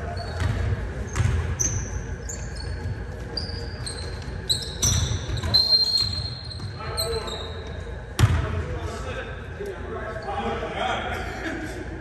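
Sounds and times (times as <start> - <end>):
sneakers squeaking on floor: 0.0 - 8.5.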